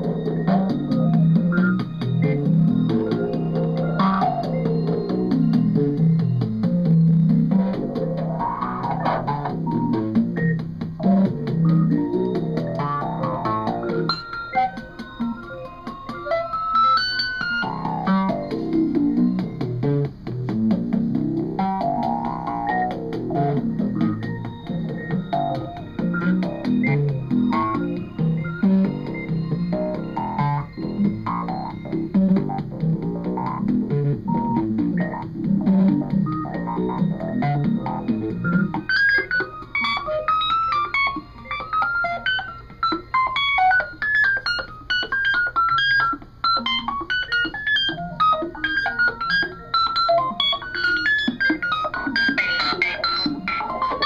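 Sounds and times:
noisy electronic music: 0.0 - 54.0.

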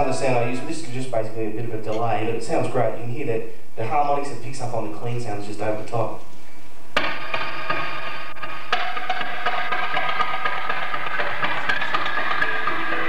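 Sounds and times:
electric guitar playing fast picked notes: 7.0 - 13.0.

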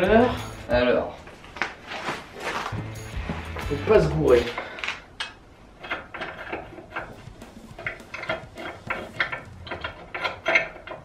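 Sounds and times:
ratchet wrench clicking: 5.8 - 11.0.

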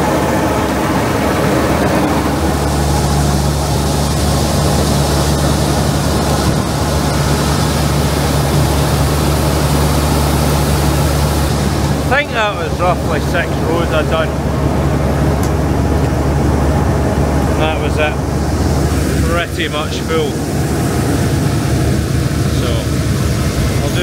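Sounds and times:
combine harvester running: 0.0 - 24.0
deep steady hum: 0.0 - 24.0
auger unloading grain: 0.1 - 14.5, 17.4 - 24.0.

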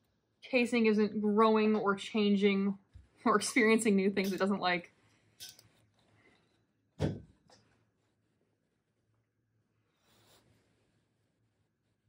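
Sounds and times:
soft fabric rustle: 9.8 - 12.0.

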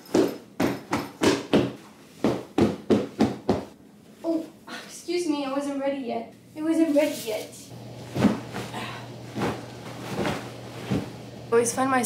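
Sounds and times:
soft thumps of pillows patted: 8.0 - 11.3.

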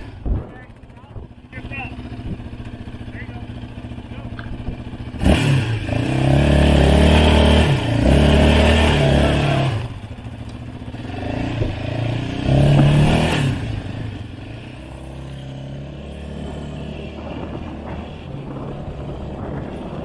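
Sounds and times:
quad engine revving: 0.0 - 20.0.

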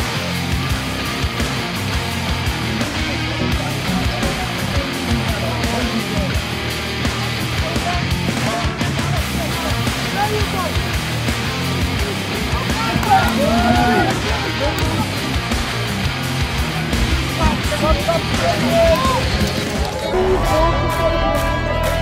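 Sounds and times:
rock music: 0.0 - 22.0
voices: 0.0 - 22.0.

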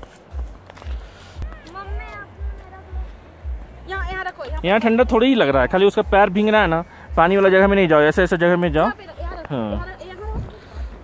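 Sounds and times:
footsteps in snow: 0.0 - 3.7.

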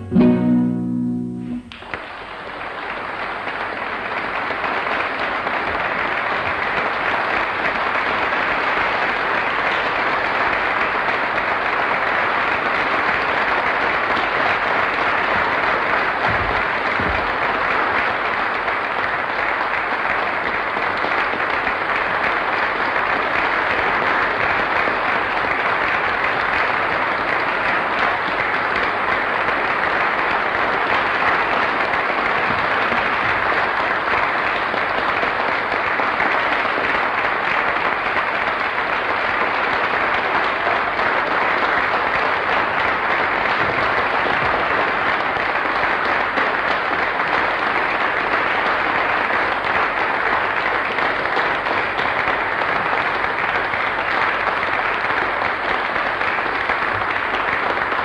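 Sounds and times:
audience applauding: 0.0 - 58.0.

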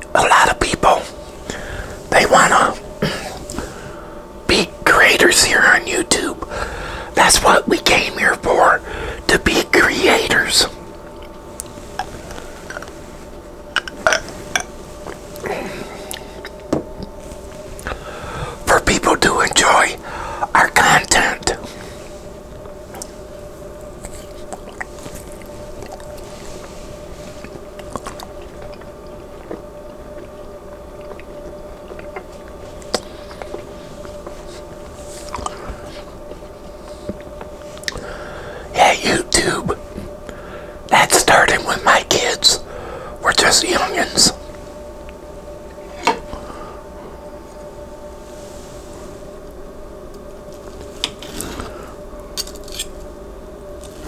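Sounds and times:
low background hum: 0.0 - 54.0
man whispering: 0.1 - 1.2, 2.0 - 3.4, 4.5 - 6.5, 7.1 - 10.8, 18.6 - 22.0, 38.7 - 39.8, 40.9 - 44.5
chewing: 23.9 - 26.7, 27.4 - 34.4, 35.2 - 35.6.

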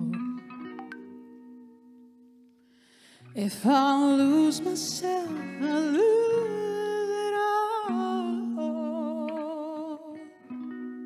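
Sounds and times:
electric guitar chords: 0.0 - 2.5.

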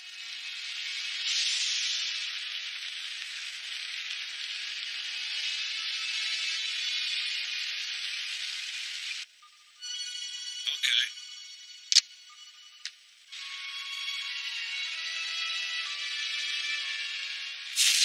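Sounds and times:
loud steady hiss: 0.0 - 9.3, 13.4 - 18.0
faint background music: 0.0 - 18.0.

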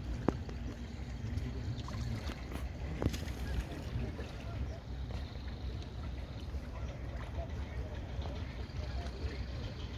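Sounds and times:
boat engine rumble: 0.0 - 9.9
faint voices: 0.0 - 9.9.

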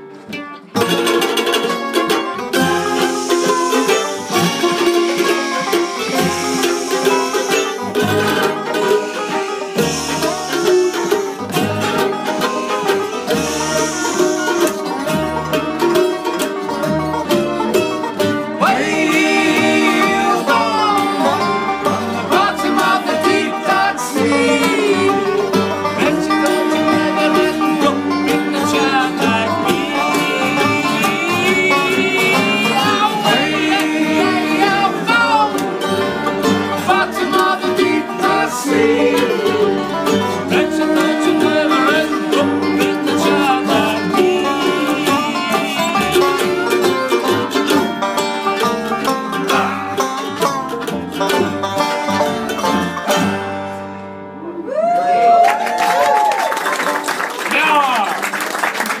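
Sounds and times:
upright double bass: 0.0 - 55.2
banjo picking: 0.0 - 59.0
mandolin: 0.0 - 59.0.

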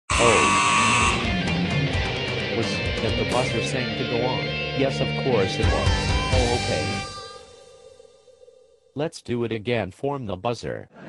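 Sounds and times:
harsh buzzer: 0.1 - 1.5
music: 0.1 - 9.0.

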